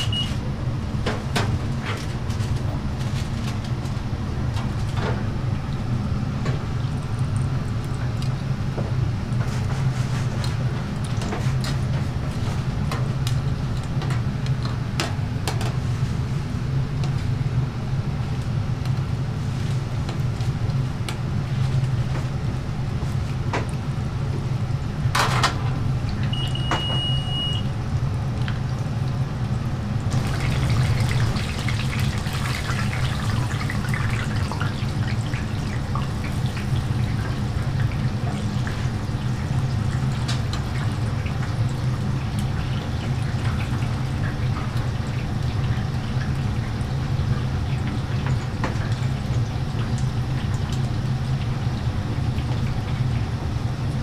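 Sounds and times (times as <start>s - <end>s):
short high electronic beep: 0.0s - 0.3s
low mechanical hum: 0.0s - 54.0s
croquettes deep-frying in oil: 26.0s - 54.0s.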